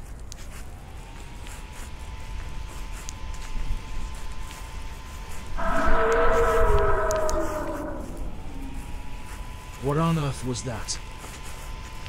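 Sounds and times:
eerie creature howl: 5.5s - 9.2s.

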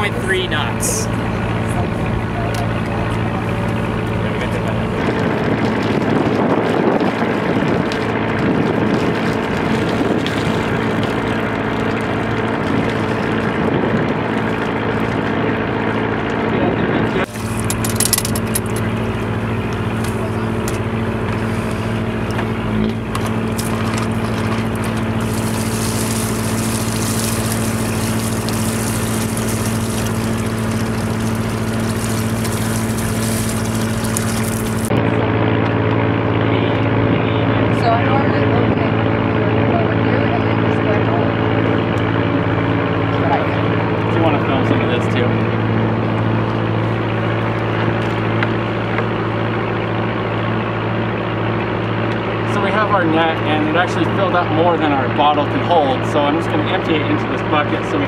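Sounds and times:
boat engine humming: 0.0s - 58.0s
hose spraying water: 17.2s - 17.8s, 23.5s - 34.9s.

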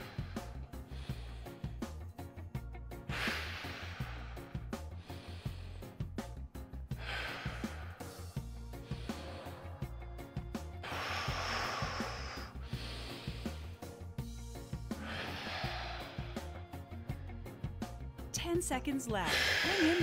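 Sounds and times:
man breathing heavily: 0.0s - 18.0s, 19.3s - 20.0s
background music with steady beat: 0.0s - 20.0s.

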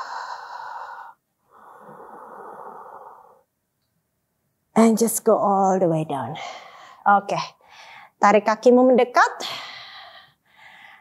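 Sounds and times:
woman breathing: 0.0s - 3.5s, 6.3s - 8.2s, 9.4s - 11.0s.

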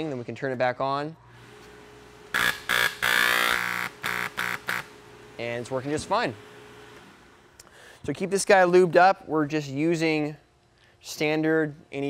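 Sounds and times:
spray gun pump buzzing: 1.3s - 7.6s.

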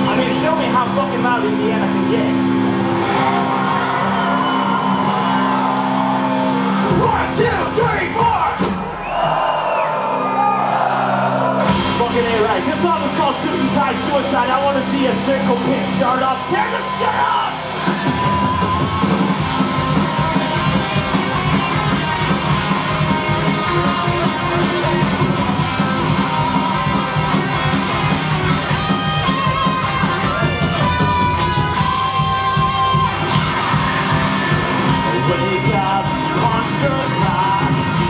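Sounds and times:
distorted electric guitars: 0.0s - 9.1s, 11.2s - 38.0s
bass guitar: 0.0s - 9.2s, 10.3s - 38.0s
drums: 0.0s - 38.0s
singer yelling and singing: 6.8s - 9.6s, 11.8s - 33.2s, 34.7s - 38.0s.

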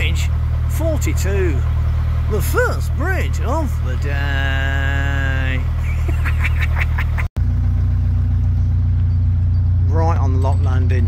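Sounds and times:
diesel boat engine droning: 0.0s - 11.0s.

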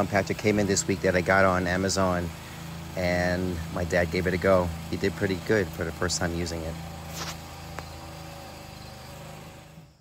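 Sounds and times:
plate compactor engine running: 0.0s - 10.0s.

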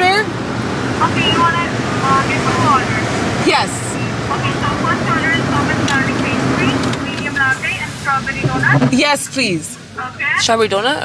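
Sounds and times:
car engine idling hum: 0.0s - 11.0s.

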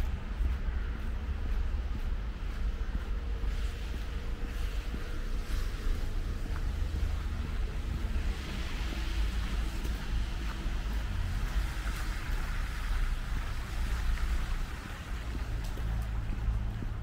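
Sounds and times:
low traffic rumble: 0.0s - 17.0s
tyre hiss on wet road: 3.4s - 16.5s.

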